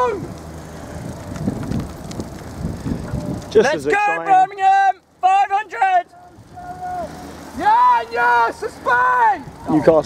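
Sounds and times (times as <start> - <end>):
wind buffeting microphone: 0.0 - 3.9.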